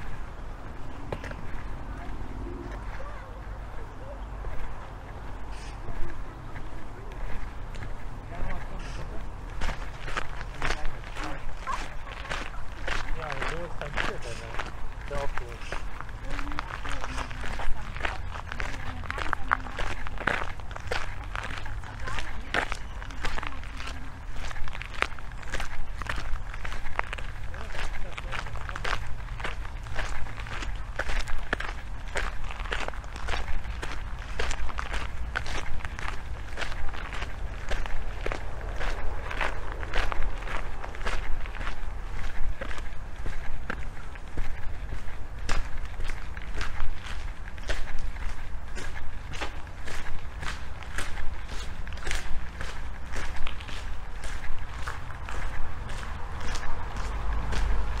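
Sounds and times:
footsteps on gravel: 0:00.0 - 0:58.0
steady low rumble: 0:00.0 - 0:58.0.

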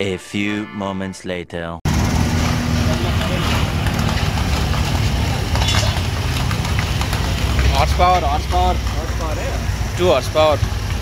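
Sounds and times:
idling engines and traffic: 0:01.9 - 0:11.0.

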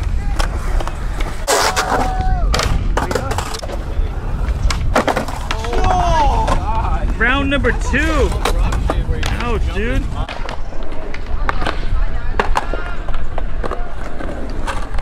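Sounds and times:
skateboard wheels rolling on concrete: 0:00.0 - 0:15.0
skateboards clacking on ground: 0:00.0 - 0:15.0.

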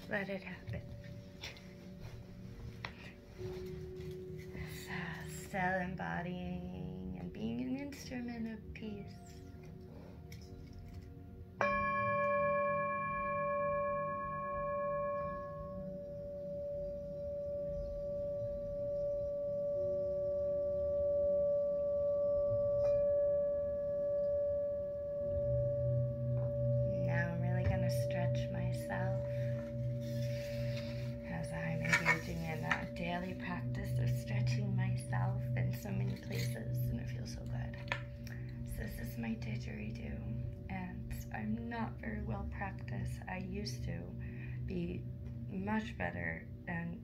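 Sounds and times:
singing bowl ringing: 0:00.0 - 0:02.2, 0:11.6 - 0:47.0
person's voice: 0:31.3 - 0:37.9.

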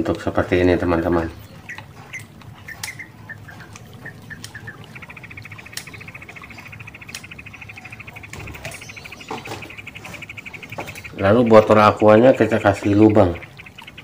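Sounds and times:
birds chirping: 0:00.0 - 0:14.0.

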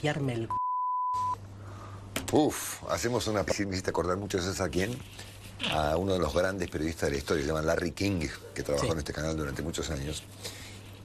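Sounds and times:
electronic censor beep: 0:00.5 - 0:01.4
man speaking: 0:02.3 - 0:10.2.

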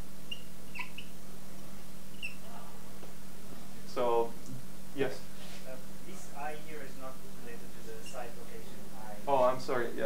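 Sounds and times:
steady low hum: 0:00.0 - 0:10.0
whiteboard marker squeaking: 0:00.3 - 0:01.2, 0:02.1 - 0:02.5, 0:08.0 - 0:08.3.

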